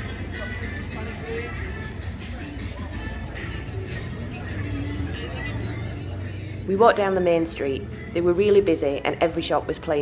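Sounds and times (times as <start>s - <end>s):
music playing: 0.0s - 10.0s
people talking: 0.0s - 10.0s
road traffic: 0.0s - 10.0s.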